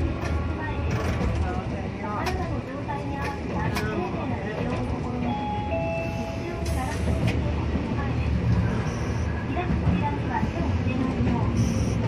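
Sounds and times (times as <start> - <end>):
streetcar rumbling on track: 0.0 - 12.0.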